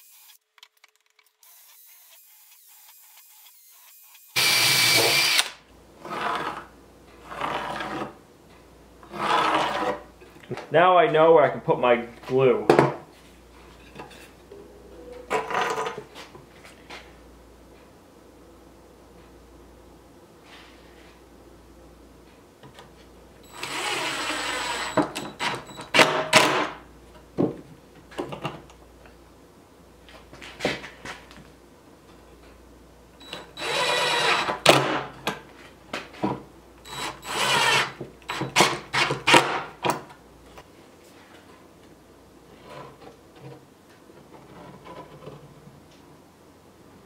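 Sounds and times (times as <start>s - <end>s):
drill clicks: 0.2s - 5.6s, 33.2s - 34.6s, 36.9s - 39.1s
cordless drill drilling into wood: 1.4s - 5.6s, 23.5s - 25.7s, 33.2s - 34.7s, 36.9s - 39.1s.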